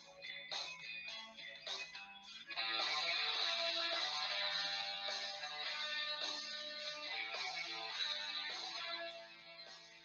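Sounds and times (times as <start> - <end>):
guitar music plucked and strummed: 0.0 - 10.0.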